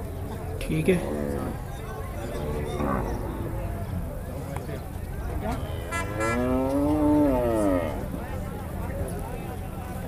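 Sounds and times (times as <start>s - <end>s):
calf mooing: 2.3s - 3.7s.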